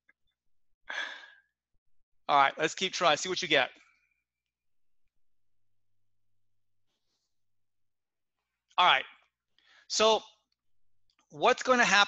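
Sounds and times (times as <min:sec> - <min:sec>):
breathy exhale: 0:00.9 - 0:01.5.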